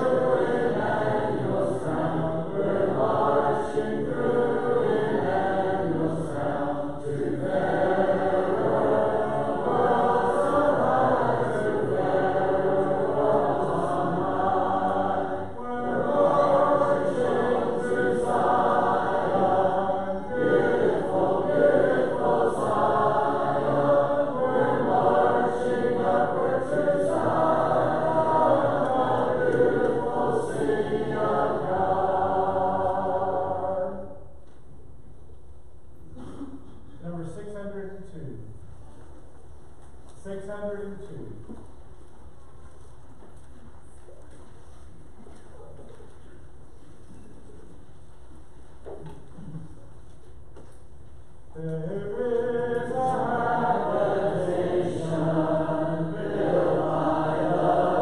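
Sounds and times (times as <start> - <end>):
congregation singing a hymn: 0.0 - 34.4, 51.5 - 58.0.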